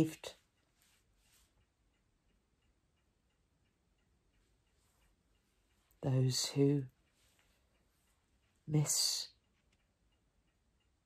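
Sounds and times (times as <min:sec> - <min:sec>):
faint clock ticking: 0:00.0 - 0:11.0.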